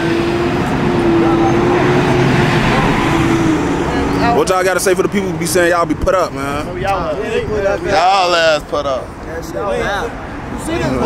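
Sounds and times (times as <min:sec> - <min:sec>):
heavy vehicle engine hum: 0:00.0 - 0:07.9
road noise: 0:00.0 - 0:11.0.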